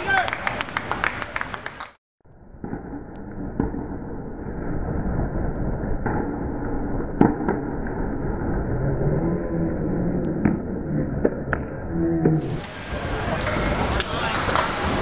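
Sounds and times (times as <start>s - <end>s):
people clapping: 0.0s - 2.0s, 13.4s - 15.0s.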